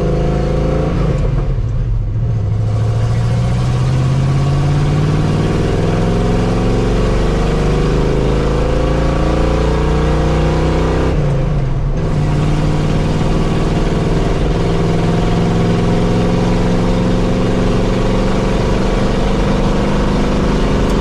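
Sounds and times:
truck engine at highway speed: 0.0 - 21.0.

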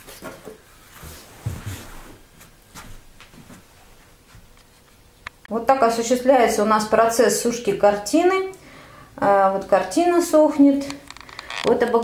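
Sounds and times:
rustling of clothes and upholstery: 0.0 - 4.9.

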